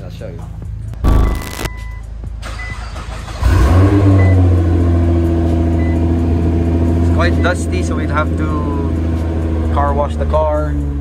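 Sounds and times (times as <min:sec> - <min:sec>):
noise burst: 0:01.0 - 0:01.7
small beeps: 0:01.0 - 0:02.0
car engine starting and idling: 0:01.0 - 0:09.6.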